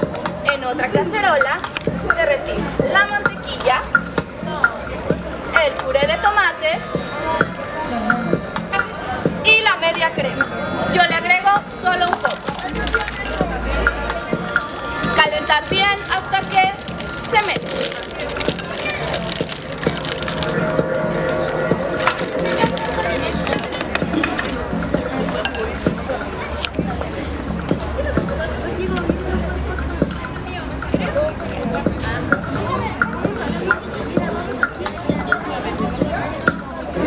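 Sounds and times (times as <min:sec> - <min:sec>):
background music: 0:00.0 - 0:37.0
crowd chatter: 0:00.0 - 0:37.0
high-pitched voice: 0:05.5 - 0:09.6.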